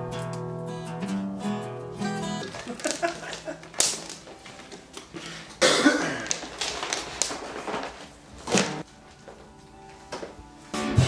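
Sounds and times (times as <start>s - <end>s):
handling noises: 2.4s - 10.6s
guitar chord strummed: 10.8s - 11.0s.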